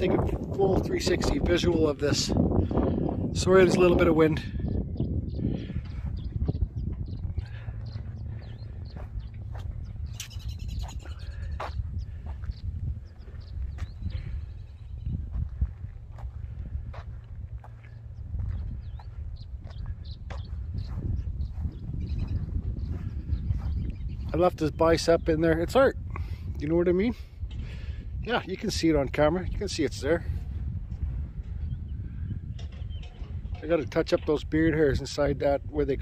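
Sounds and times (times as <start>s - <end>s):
wind noise on microphone: 0.0s - 36.0s
bird chirps: 4.6s - 15.2s, 17.6s - 24.5s, 31.5s - 34.4s.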